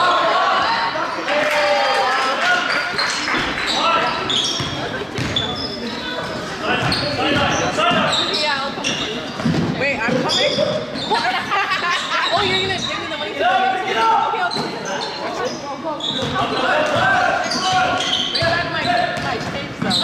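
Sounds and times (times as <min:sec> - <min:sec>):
voices echoing in hall: 0:00.0 - 0:20.0
sneakers squeaking: 0:02.6 - 0:13.4, 0:14.3 - 0:20.0
basketball dribbling on court: 0:04.6 - 0:05.7, 0:06.8 - 0:08.0.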